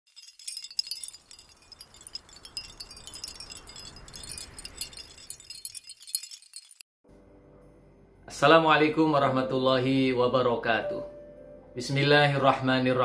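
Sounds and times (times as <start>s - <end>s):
tinkling chime-like high notes: 0.1s - 6.8s.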